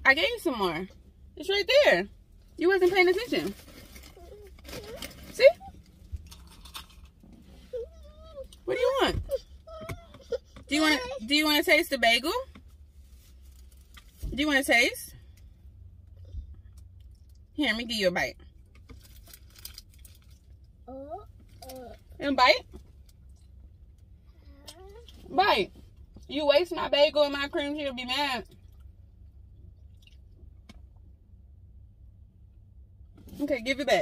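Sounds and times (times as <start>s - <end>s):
low rumble inside a car: 0.0s - 34.0s
person speaking: 10.7s - 11.4s.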